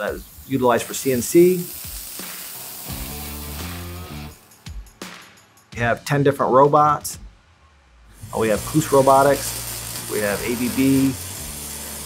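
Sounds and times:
plasma torch hissing: 0:00.0 - 0:04.7, 0:08.1 - 0:12.0
background music: 0:00.0 - 0:12.0.

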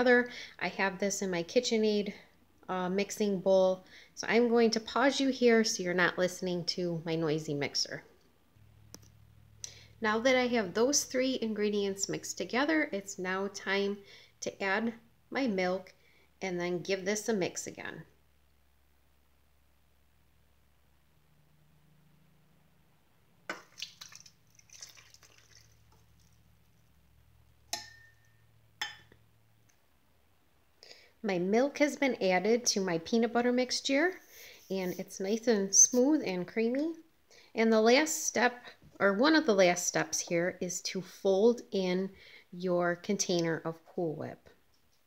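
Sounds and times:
low steady hum: 0:00.0 - 0:38.0
milk splashing and dripping: 0:23.5 - 0:26.5
metal cup clinking on bowl: 0:27.7 - 0:29.1.

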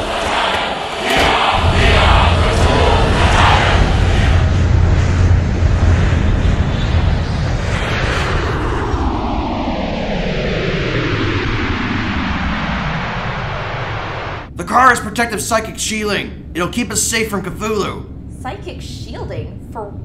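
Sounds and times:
jet-like engine roar: 0:00.0 - 0:18.8.

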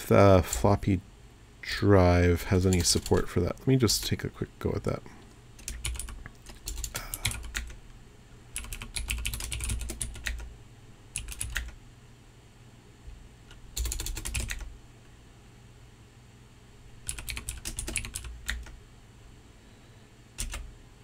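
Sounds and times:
typing on keyboard: 0:02.6 - 0:03.2, 0:05.6 - 0:07.8, 0:08.6 - 0:10.5, 0:11.2 - 0:11.8, 0:13.8 - 0:14.7, 0:17.0 - 0:18.8, 0:20.4 - 0:20.7.

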